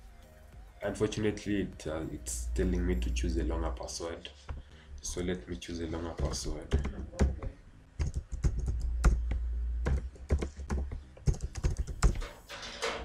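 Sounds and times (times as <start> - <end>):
computer keyboard typing: 6.2 - 12.3.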